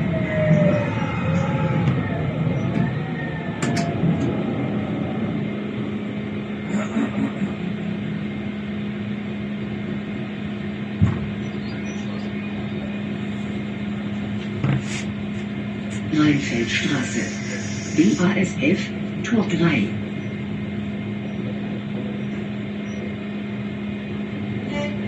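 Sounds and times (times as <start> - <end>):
tram running rumble and hum: 0.0 - 25.0.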